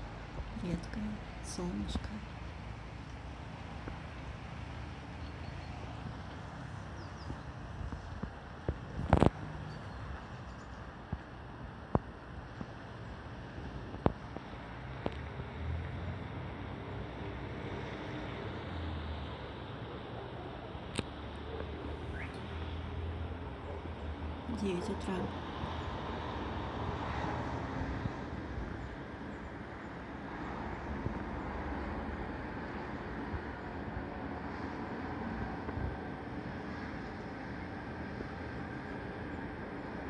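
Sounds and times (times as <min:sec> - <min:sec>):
distant traffic rumble: 0:00.0 - 0:40.0.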